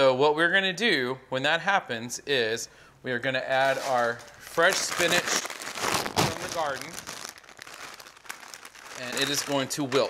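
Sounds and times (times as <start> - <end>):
plastic bag crinkling: 3.5 - 10.0.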